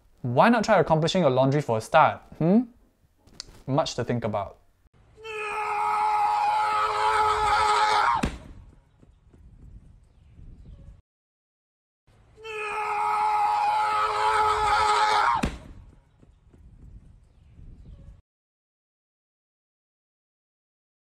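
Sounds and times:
long high scream: 0:05.2 - 0:08.2, 0:12.4 - 0:15.4.

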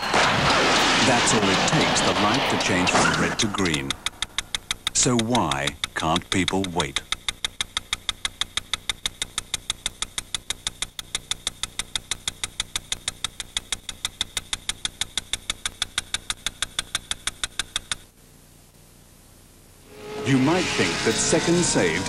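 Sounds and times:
crossing signal ticking rapidly: 0:00.0 - 0:18.1.

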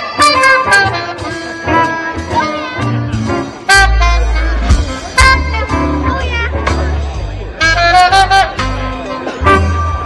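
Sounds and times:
live band playing: 0:00.0 - 0:10.0.

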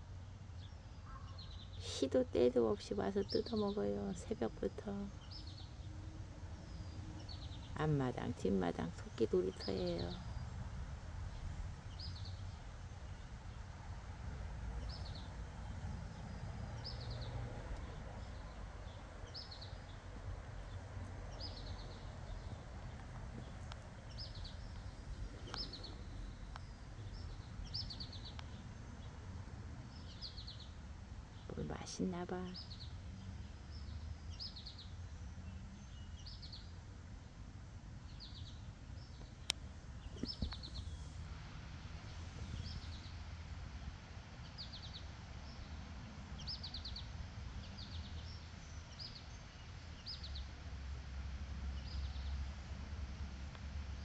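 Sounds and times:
low outdoor rumble: 0:00.0 - 0:54.0
songbird singing: 0:00.1 - 0:13.8, 0:14.7 - 0:50.7, 0:51.7 - 0:52.8.

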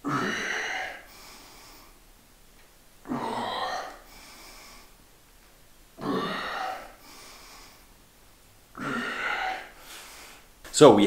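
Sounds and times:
man exhaling hard: 0:08.8 - 0:10.5.

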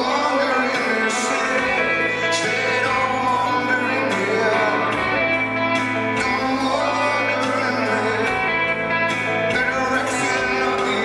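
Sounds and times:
electric guitar: 0:00.0 - 0:11.0
live rock band: 0:00.0 - 0:11.0
man singing into microphone: 0:00.0 - 0:11.0.

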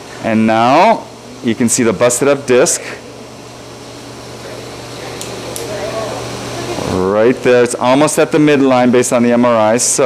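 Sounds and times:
equipment and ventilation hum: 0:00.0 - 0:10.0.

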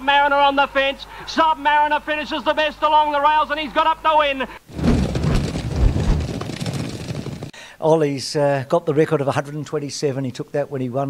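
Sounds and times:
horses galloping on turf: 0:04.7 - 0:07.5.

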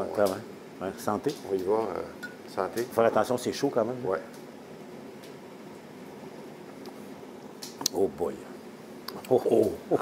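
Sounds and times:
evaporator boiling: 0:00.0 - 0:10.0.

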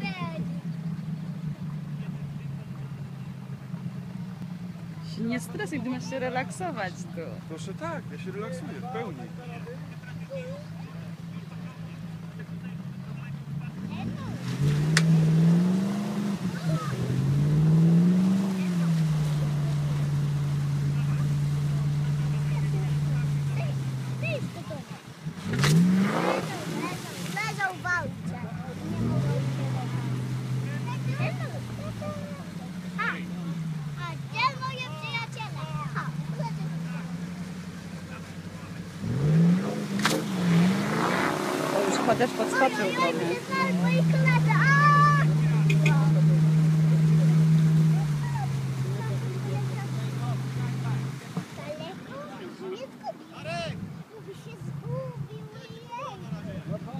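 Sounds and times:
vehicle engine idling and revving: 0:00.0 - 0:56.9
sharp crack: 0:14.3 - 0:17.1, 0:25.4 - 0:27.8, 0:38.7 - 0:42.0
sharp click: 0:40.0 - 0:40.2.

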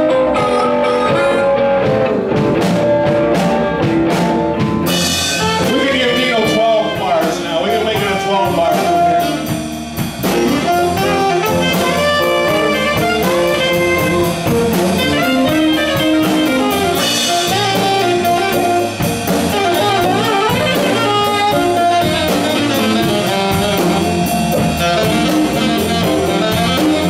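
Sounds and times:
saxophone solo: 0:00.0 - 0:02.3, 0:04.8 - 0:27.0
blues band playing: 0:00.0 - 0:27.0.

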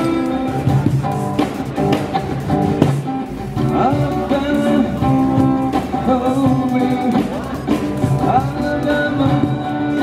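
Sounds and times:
man singing into microphone: 0:00.0 - 0:01.0, 0:03.6 - 0:10.0
cajon drum beat: 0:00.0 - 0:10.0
strummed acoustic guitar: 0:00.0 - 0:10.0.

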